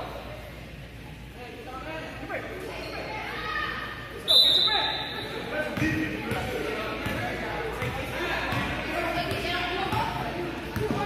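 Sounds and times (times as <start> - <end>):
voices in a large gym: 0.0 - 11.0
basketball bouncing on court: 5.8 - 11.0.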